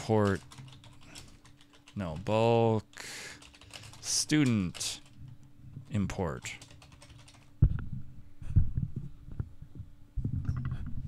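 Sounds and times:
faint steady hum: 0.0 - 11.0
dull keyboard typing thumps: 6.6 - 7.8.

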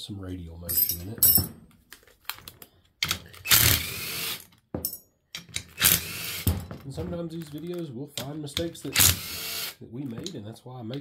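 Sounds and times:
metal tools clicking and clattering: 0.7 - 1.6.

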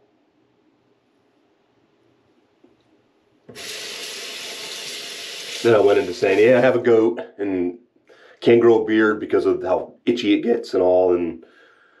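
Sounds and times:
faucet water running into basin: 3.5 - 6.7.

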